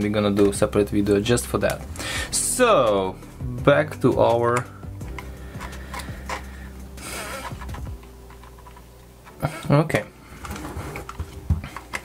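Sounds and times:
plastic headset rubbing: 5.1s - 9.7s, 10.4s - 12.0s.

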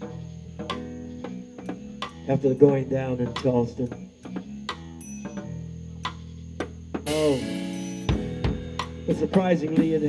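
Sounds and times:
band playing low chords: 0.0s - 10.0s.

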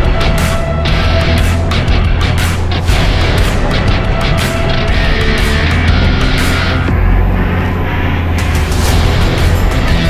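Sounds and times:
vehicle engine low drone: 0.0s - 10.0s.

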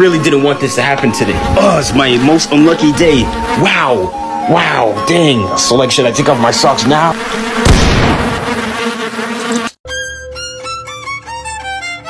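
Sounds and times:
violin tune: 0.0s - 7.1s, 9.8s - 12.0s
cartoon flies buzzing: 5.8s - 9.8s
loud burst: 7.6s - 8.8s.

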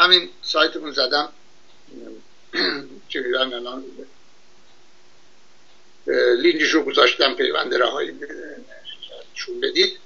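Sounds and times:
man's voice over webcam call: 0.0s - 4.2s, 6.0s - 10.0s.

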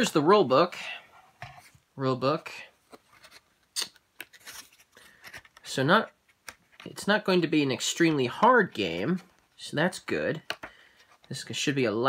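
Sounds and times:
book pages rustling: 2.8s - 7.0s.

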